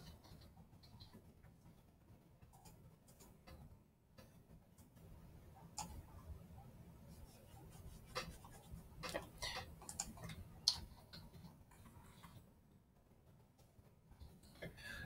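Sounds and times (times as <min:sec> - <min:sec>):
computer keyboard and mouse clicking: 0:02.4 - 0:05.0, 0:05.6 - 0:06.1, 0:08.1 - 0:12.4.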